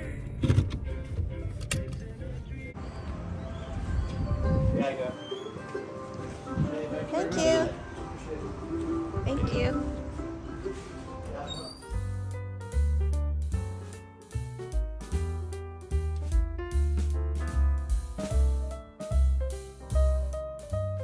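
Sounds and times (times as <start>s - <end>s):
bass line and keyboard chords: 3.7s - 21.0s.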